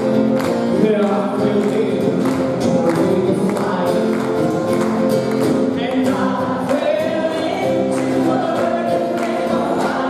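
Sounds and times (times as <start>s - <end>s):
strummed acoustic guitar: 0.0s - 10.0s
audience singing along: 5.9s - 10.0s
woman singing: 6.1s - 10.0s.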